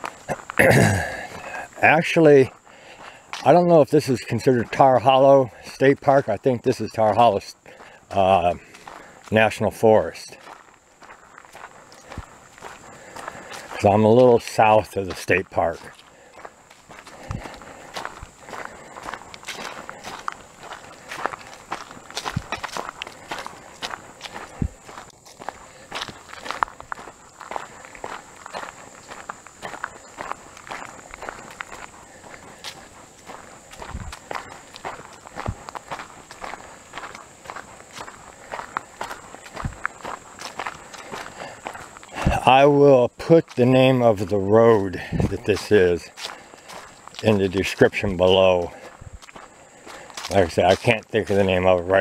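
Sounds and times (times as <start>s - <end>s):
footsteps on leafy dirt track: 0.0s - 52.0s.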